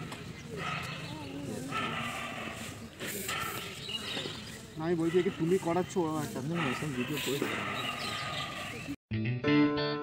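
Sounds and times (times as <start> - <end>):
people talking quietly: 0.0 - 9.0.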